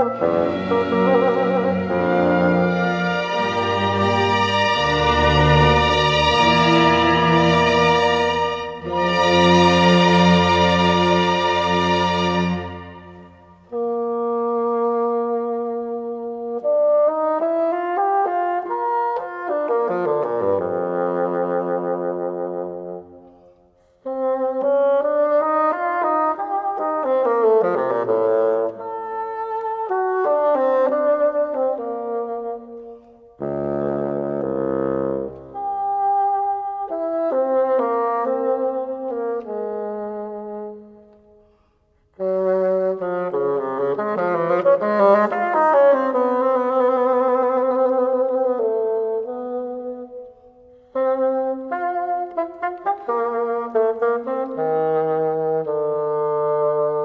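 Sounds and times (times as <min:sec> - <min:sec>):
solo bassoon playing: 0:00.0 - 0:57.0.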